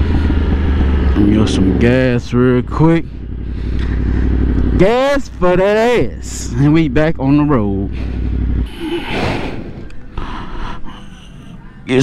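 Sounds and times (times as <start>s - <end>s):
motorcycle engine rumbling softly: 0.0s - 8.7s.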